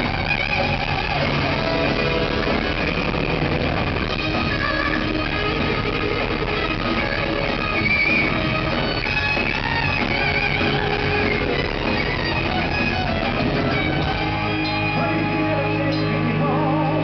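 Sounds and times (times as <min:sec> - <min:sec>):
live metal band playing: 0:00.0 - 0:17.0
wavering lead guitar melody: 0:00.0 - 0:17.0.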